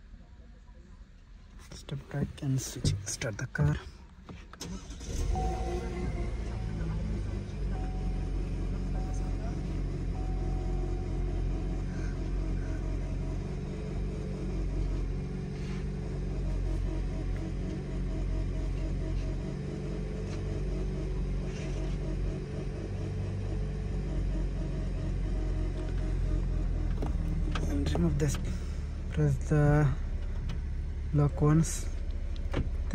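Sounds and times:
car engine starting and idling: 1.0s - 32.9s.

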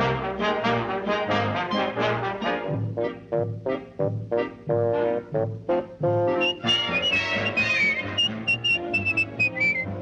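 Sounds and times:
swing band accompaniment: 0.0s - 10.0s
person whistling high notes: 6.4s - 10.0s.

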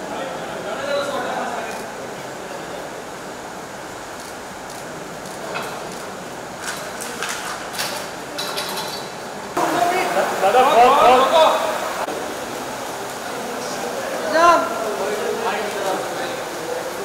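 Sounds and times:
low background noise: 0.0s - 17.0s
loud voices: 9.5s - 17.0s.

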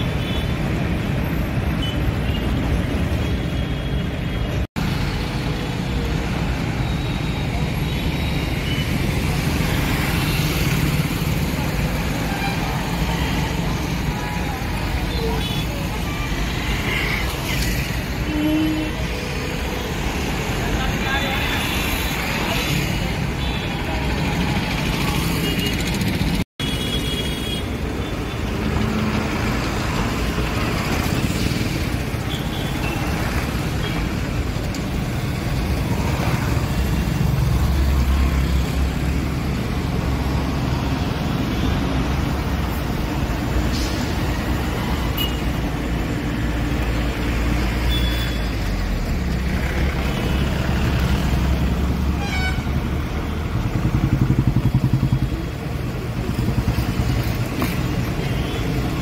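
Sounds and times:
traffic engines passing: 0.0s - 59.0s.

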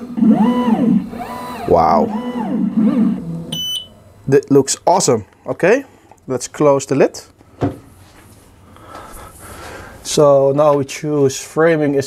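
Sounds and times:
stepper motor whine: 0.0s - 3.6s
short high electronic beep: 3.5s - 3.9s.

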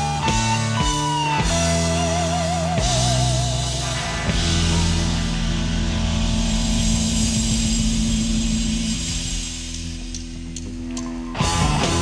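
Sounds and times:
electric guitars sustained chord: 0.0s - 12.0s.

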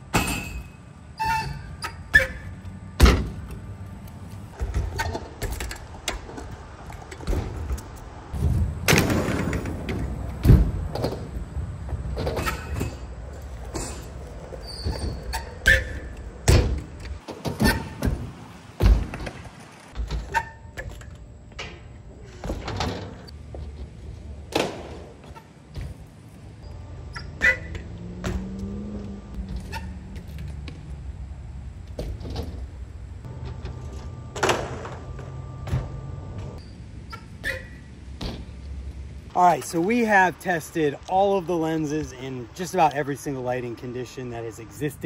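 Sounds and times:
bike tyres thunking on ramps: 0.0s - 3.6s, 4.5s - 26.5s, 27.1s - 28.6s, 29.4s - 33.6s, 37.4s - 39.0s.

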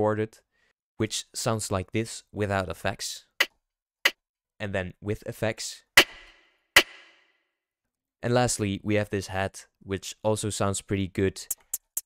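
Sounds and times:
processed rim-shot snare sample: 6.0s - 7.2s.

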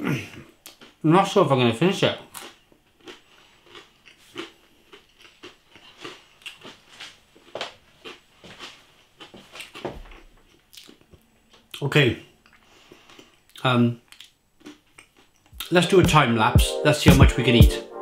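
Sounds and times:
person chewing food: 2.3s - 11.8s, 12.4s - 15.7s
mouth clicks and smacks: 13.5s - 15.8s.

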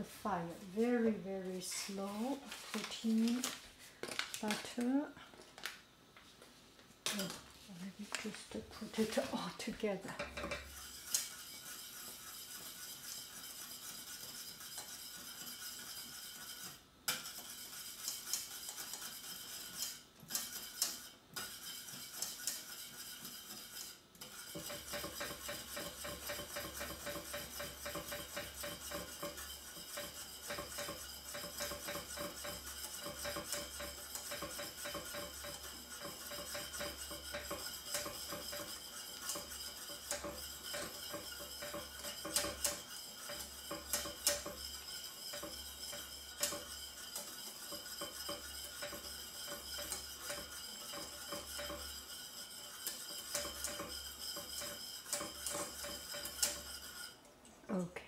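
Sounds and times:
whisk scraping metal pan: 0.0s - 5.0s, 7.1s - 57.3s.

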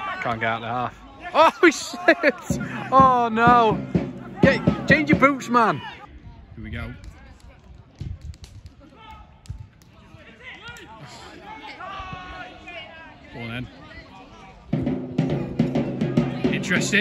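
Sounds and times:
distant voices shouting: 1.2s - 6.1s.

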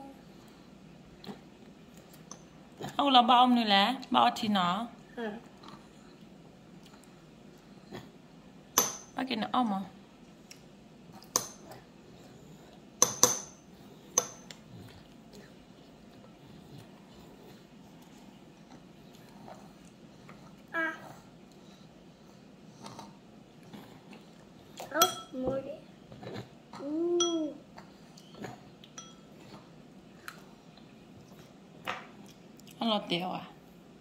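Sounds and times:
child vocalizing: 20.7s - 21.2s, 26.8s - 27.6s
metal spoon clinking on ceramic bowl: 25.0s - 25.3s, 29.0s - 29.3s
child humming: 26.8s - 27.6s.

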